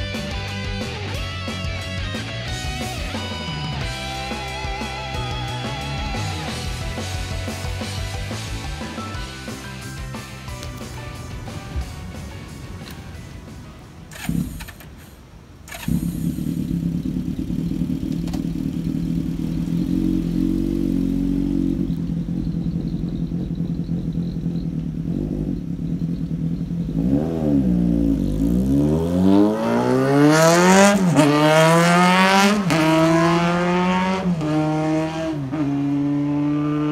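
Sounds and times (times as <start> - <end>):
motorcycle engine idling and revving: 0.0 - 36.9.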